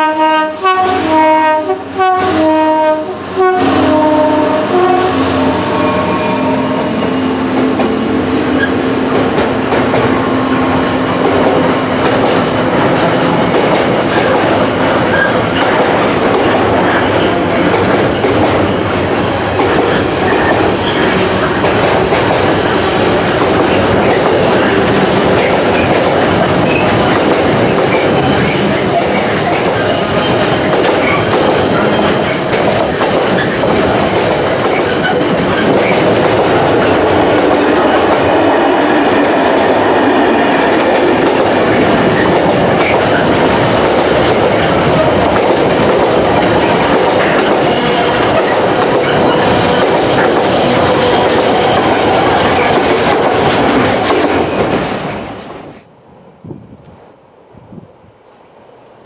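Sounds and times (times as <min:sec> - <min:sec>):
train wheels running on rails: 0:00.0 - 0:55.9.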